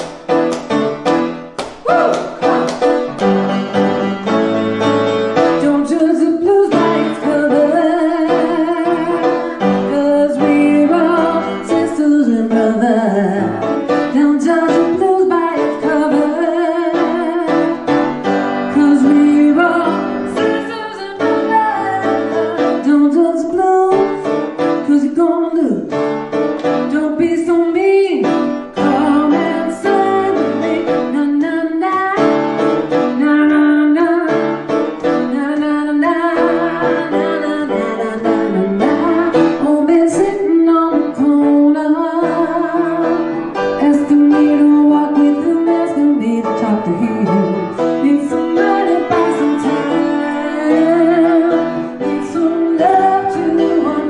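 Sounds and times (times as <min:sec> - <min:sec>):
grand piano: 0:00.0 - 0:54.0
woman singing blues: 0:05.6 - 0:17.8, 0:18.6 - 0:24.2, 0:24.8 - 0:26.0, 0:26.8 - 0:32.4, 0:33.1 - 0:34.6, 0:35.2 - 0:54.0.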